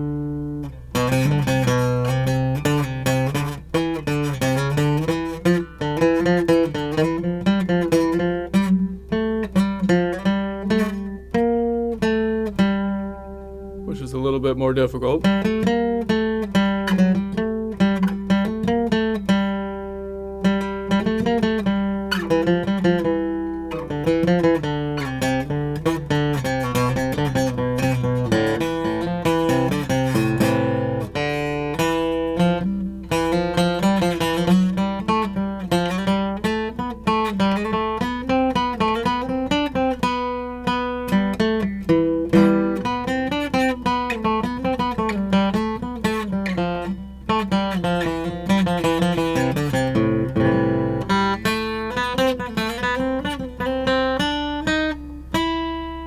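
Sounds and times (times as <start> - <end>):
acoustic guitar picking scale notes: 0.0 - 56.0.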